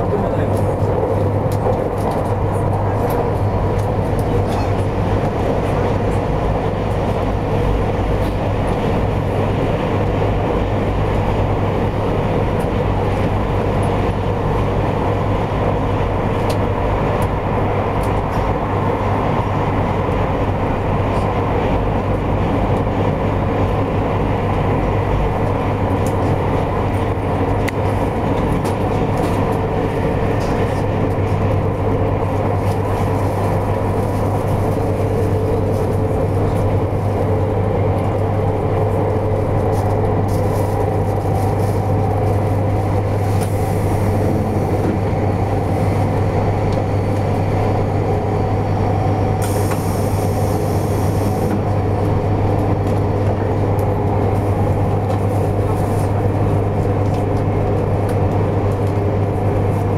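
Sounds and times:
constant low hum: 0:00.0 - 0:59.9
train running rumble: 0:00.0 - 0:59.9.

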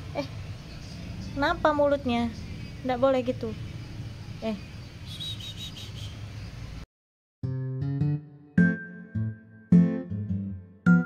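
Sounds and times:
high-pitched bird-like chirps: 0:04.4 - 0:06.3.

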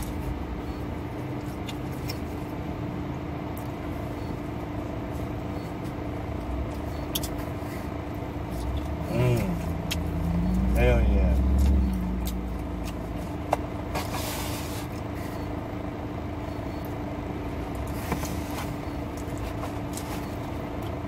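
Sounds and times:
steady car interior hum: 0:00.0 - 0:21.0
low rumble: 0:08.7 - 0:13.4.

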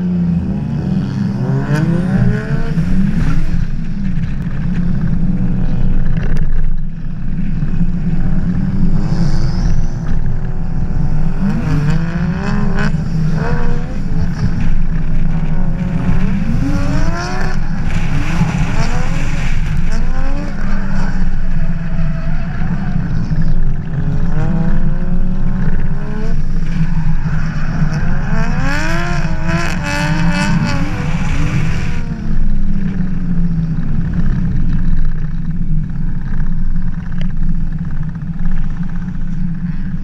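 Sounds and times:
car engine revving: 0:00.0 - 0:36.2
wind and road noise: 0:00.0 - 0:40.0.

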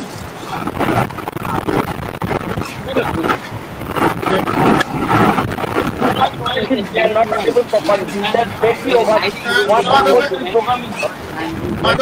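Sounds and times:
muffled distorted speech: 0:00.0 - 0:12.0.

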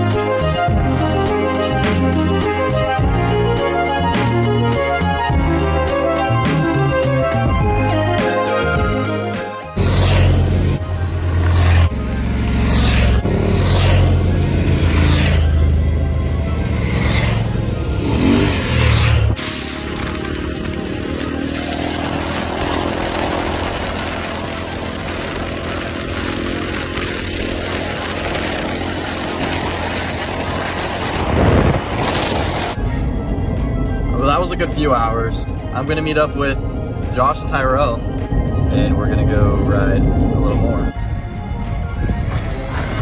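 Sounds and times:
dirt bike engine: 0:09.8 - 0:32.9
wind noise on microphone: 0:22.0 - 0:34.1, 0:38.1 - 0:43.0.

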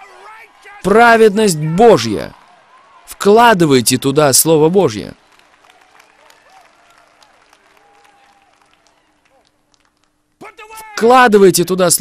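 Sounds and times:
faint applause: 0:02.3 - 0:03.3, 0:05.0 - 0:10.8.

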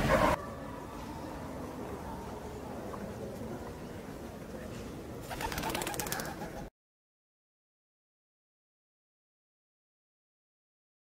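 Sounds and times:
pigeons: 0:05.2 - 0:06.7
wings fluttering: 0:05.2 - 0:06.7.

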